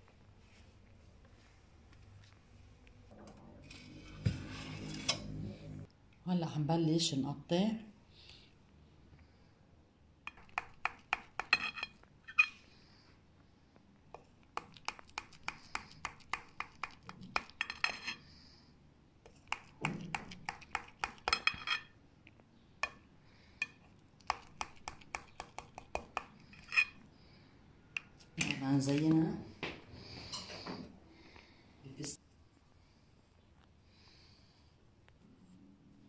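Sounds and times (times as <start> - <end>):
knife clinking on glass dish: 11.5 - 12.6.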